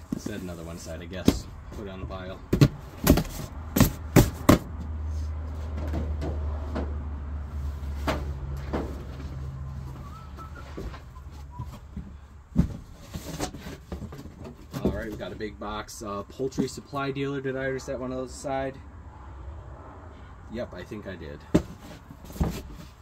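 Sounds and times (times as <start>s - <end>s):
boxes and books knocking: 1.2s - 1.8s, 2.5s - 4.9s, 11.6s - 15.3s, 21.5s - 22.9s
books thudding down: 2.5s - 4.7s.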